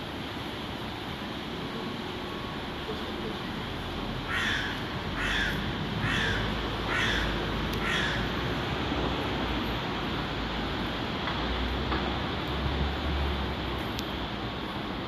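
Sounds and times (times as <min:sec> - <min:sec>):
crow cawing: 0:04.3 - 0:08.3.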